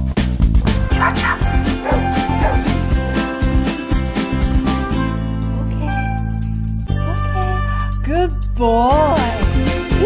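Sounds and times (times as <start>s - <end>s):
background music with steady beat: 0.0s - 10.0s
dog yipping: 0.9s - 2.7s.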